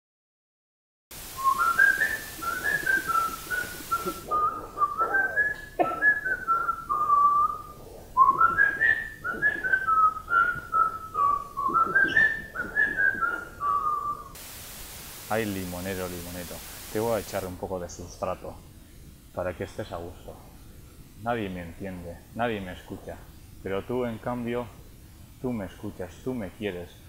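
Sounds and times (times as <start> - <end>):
person whistling a tune: 1.4 - 14.2.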